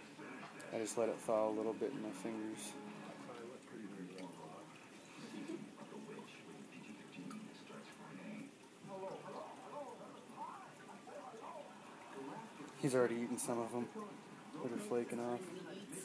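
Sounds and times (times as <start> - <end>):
faint background speech: 0.0 - 16.0.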